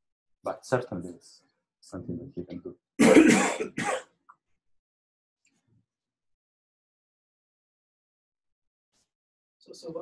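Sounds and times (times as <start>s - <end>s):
person coughing: 3.0s - 4.1s.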